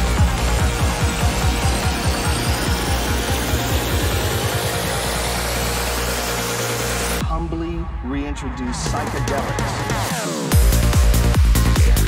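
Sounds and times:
synth rising sweep: 0.0 - 7.2
psytrance music: 0.0 - 12.0.

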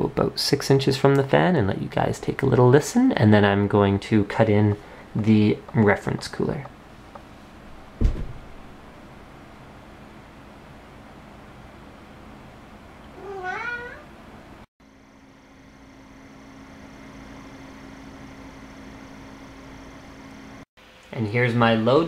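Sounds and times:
blower fan whirring with hum: 0.0 - 22.0
cooling fans whooshing: 0.0 - 22.0
cat meowing: 13.2 - 14.1.

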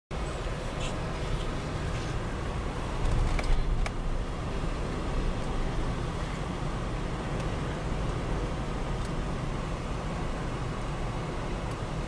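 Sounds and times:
engine and tyres rumbling on snow: 0.1 - 12.0.

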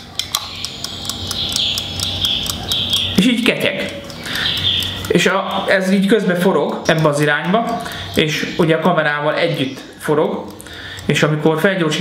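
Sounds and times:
steady high whir: 0.0 - 12.0
clockwork ticking: 0.3 - 11.4.

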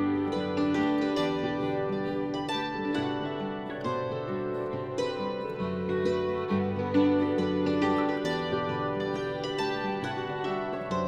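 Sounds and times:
hammered dulcimer folk music: 0.0 - 11.0.

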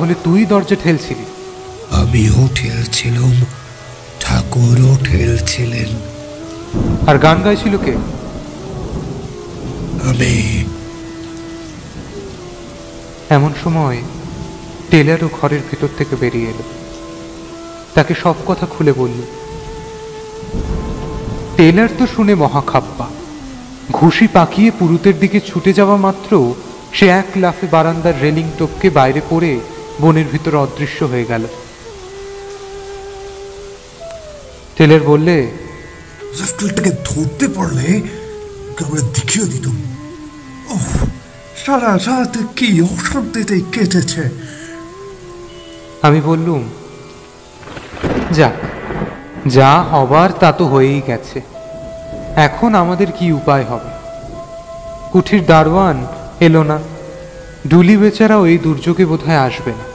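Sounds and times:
rain-like hiss: 0.0 - 59.9
thunder rumble: 5.2 - 12.5, 47.6 - 53.1
low thunder-like rumble: 47.6 - 50.4.

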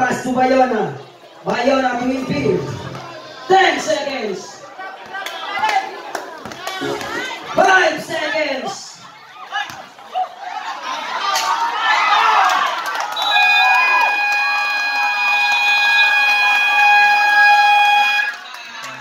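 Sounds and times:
crowd shouting and cheering: 0.0 - 19.0.

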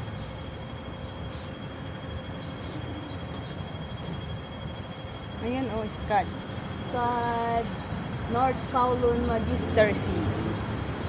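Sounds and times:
city background rumble: 0.0 - 11.0.

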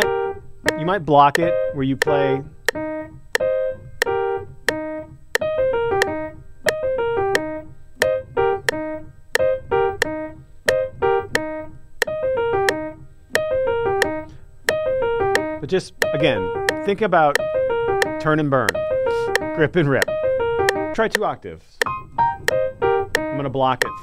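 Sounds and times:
metronome clicking: 0.0 - 24.0
piano playing descending runs: 0.0 - 24.0.

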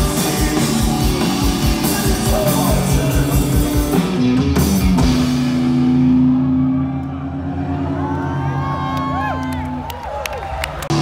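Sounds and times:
rock band low chord ringing: 0.0 - 8.9
drums: 0.0 - 11.0
crowd whooping and cheering: 6.1 - 11.0.

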